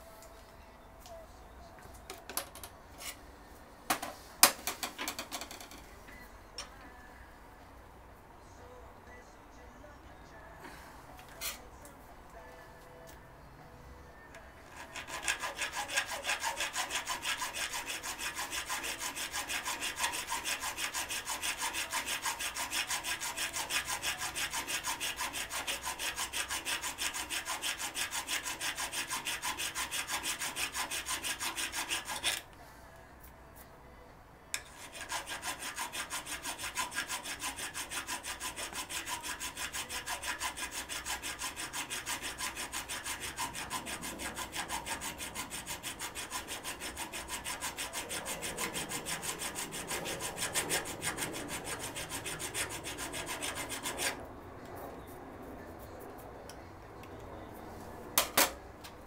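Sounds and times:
hand file rasping on metal: 14.7 - 32.4, 34.6 - 54.2.

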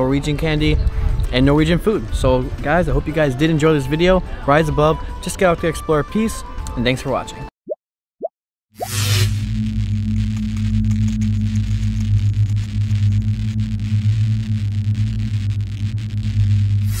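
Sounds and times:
low droning hum with hiss: 9.4 - 17.0.

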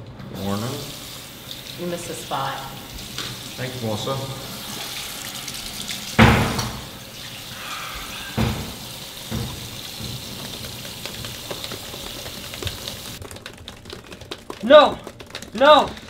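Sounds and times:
tap running water: 0.4 - 16.0
water splashes: 0.7 - 16.0.

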